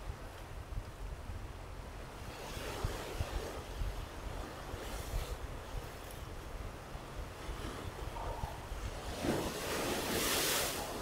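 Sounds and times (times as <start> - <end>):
wind rumbling on microphone: 0.0 - 11.0
waves breaking over rocks: 6.9 - 11.0.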